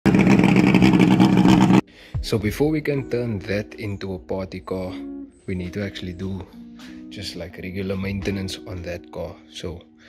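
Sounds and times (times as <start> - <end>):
engine running at high revs: 0.0 - 1.8.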